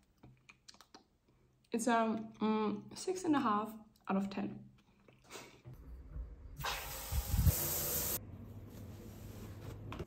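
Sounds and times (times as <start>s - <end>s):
shower water spraying: 6.6s - 8.2s.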